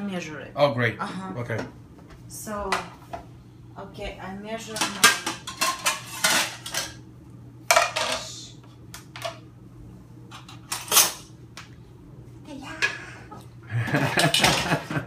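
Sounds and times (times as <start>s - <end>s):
kitchenware clattering: 4.6s - 7.0s, 7.7s - 8.4s, 10.3s - 11.3s, 13.9s - 15.0s.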